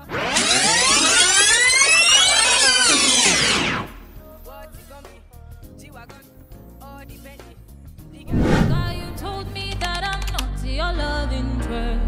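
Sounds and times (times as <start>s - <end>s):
rewind whirring sweep: 0.0s - 4.0s.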